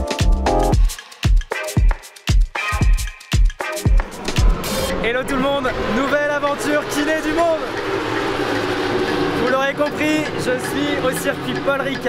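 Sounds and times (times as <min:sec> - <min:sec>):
kick drum beat: 0:00.0 - 0:04.6
racing motorcycle engines: 0:04.2 - 0:12.0
man talking: 0:05.0 - 0:07.7, 0:09.4 - 0:12.0.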